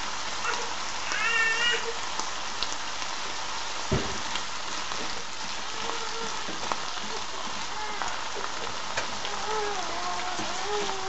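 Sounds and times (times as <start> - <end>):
food sizzling in a frying pan: 0.0 - 11.0
dull knock: 3.9 - 4.2.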